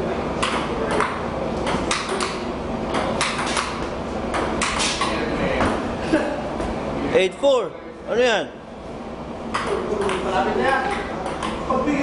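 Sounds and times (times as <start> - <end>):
ball clicking off paddles: 0.4 - 5.1, 9.5 - 11.6
ball bouncing on table: 0.4 - 5.8, 9.5 - 11.6.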